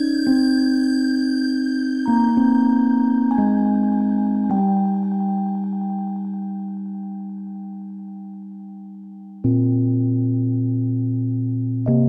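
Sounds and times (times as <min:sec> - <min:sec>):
held chord of steady tones: 0:00.0 - 0:09.6.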